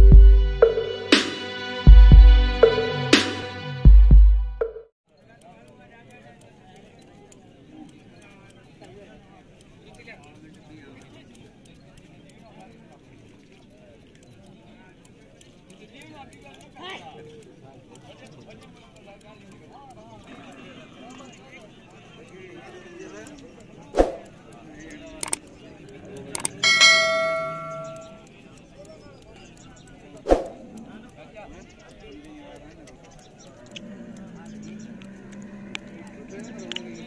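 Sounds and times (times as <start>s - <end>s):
faint voices talking: 5.1s - 37.0s
quick clicks: 5.2s - 37.0s
scissors snipping hair: 20.2s - 26.7s, 27.4s - 31.2s
bright bell chime: 26.6s - 28.2s.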